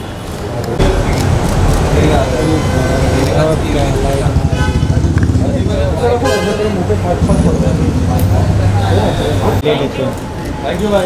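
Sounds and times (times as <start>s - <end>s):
people's voices: 0.0s - 11.0s
traffic rumble: 0.0s - 11.0s
car horn honking: 2.4s - 9.6s.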